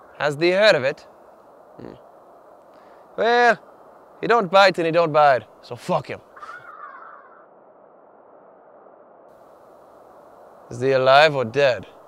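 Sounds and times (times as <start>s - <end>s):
crow cawing: 6.3s - 7.6s.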